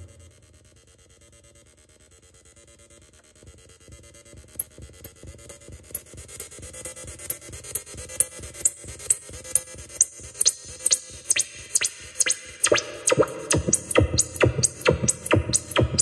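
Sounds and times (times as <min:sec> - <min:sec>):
synthesizer techno pattern: 0:10.0 - 0:16.0
low synth pulse: 0:10.6 - 0:16.0
high falling synth sweep: 0:10.8 - 0:16.0.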